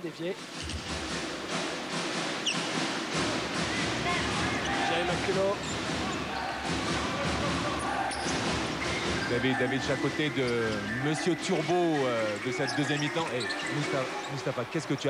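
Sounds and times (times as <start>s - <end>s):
arena crowd din: 0.0s - 15.0s.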